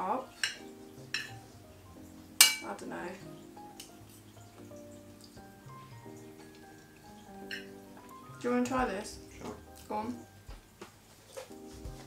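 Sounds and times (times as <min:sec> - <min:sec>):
soft background music: 0:00.0 - 0:12.0
cutlery clinking on plate: 0:02.4 - 0:02.7, 0:07.5 - 0:07.7.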